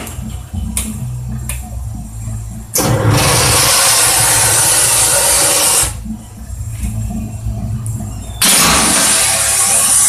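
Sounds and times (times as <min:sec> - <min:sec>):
low hum: 0:00.0 - 0:10.0
loud steady steam hiss: 0:02.8 - 0:06.0, 0:08.4 - 0:10.0.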